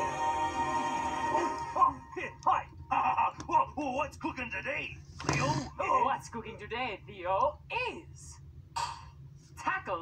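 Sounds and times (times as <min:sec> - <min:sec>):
tv title music: 0:00.0 - 0:02.3.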